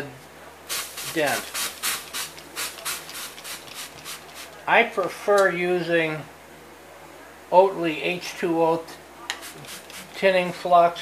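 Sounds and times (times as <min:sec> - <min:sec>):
hot metal steaming: 0:00.7 - 0:04.6
spray bottle squirting: 0:00.7 - 0:04.6, 0:09.4 - 0:10.1.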